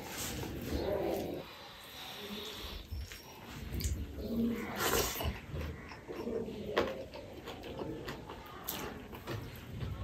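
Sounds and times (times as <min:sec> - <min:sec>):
chewing rice: 0:00.0 - 0:10.0
wet mouth and lip noises: 0:03.0 - 0:10.0.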